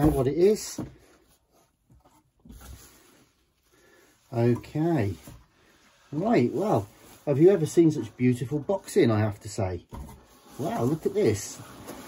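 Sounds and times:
bubble wrap rustling: 4.3s - 8.8s, 10.2s - 12.0s.

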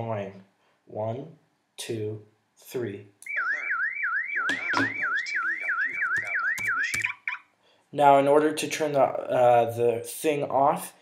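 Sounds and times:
siren alarm sweeping in pitch: 3.2s - 7.4s.

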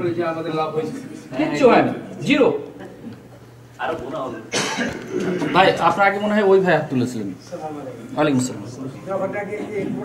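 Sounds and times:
man coughing: 4.5s - 5.8s.

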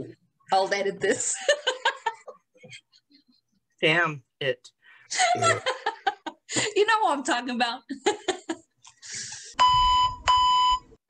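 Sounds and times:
censor bleep: 9.6s - 11.0s.

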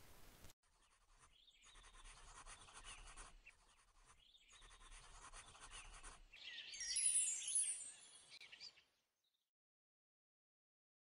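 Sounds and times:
pencil scratching on paper: 0.6s - 6.4s.

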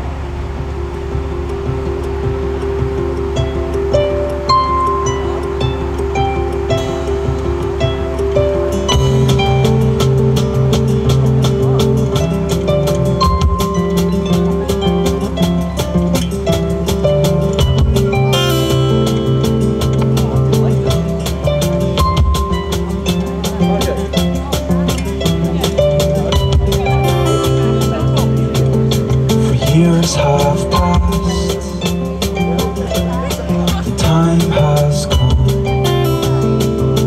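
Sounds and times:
bass line: 0.0s - 37.0s
drum kit beat: 0.0s - 37.0s
picked acoustic guitar: 0.0s - 37.0s.

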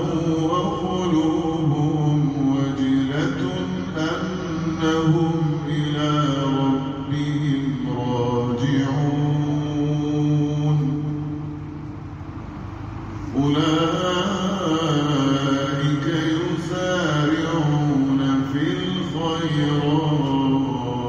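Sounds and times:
voices chanting a devotional hymn: 0.0s - 21.0s.

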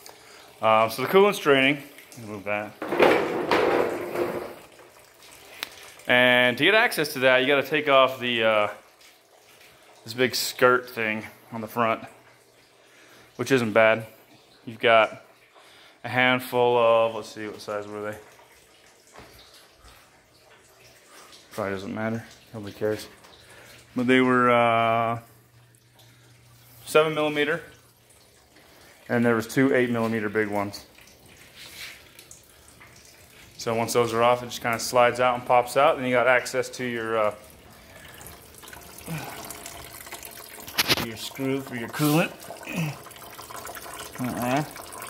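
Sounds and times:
coolant trickling from drain: 0.0s - 45.0s.

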